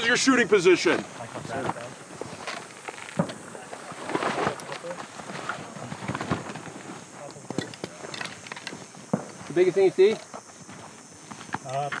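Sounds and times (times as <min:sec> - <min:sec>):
footsteps on dirt and gravel: 0:00.6 - 0:12.0.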